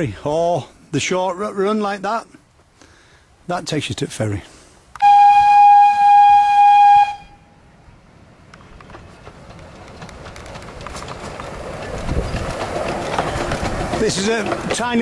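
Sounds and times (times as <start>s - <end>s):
steam locomotive whistle blast: 5.0s - 7.5s
train running noise: 5.0s - 15.0s
wheels clicking over rail joints: 8.4s - 15.0s.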